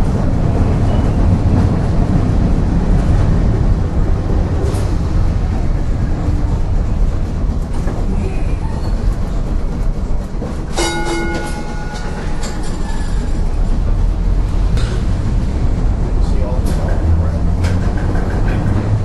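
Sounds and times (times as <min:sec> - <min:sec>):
streetcar wheels rumbling on rails: 0:00.0 - 0:19.0.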